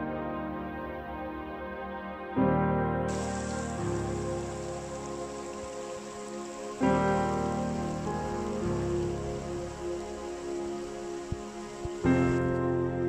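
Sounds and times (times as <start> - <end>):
slow background music: 0.0 - 13.0
stream rippling over stones: 3.1 - 12.8.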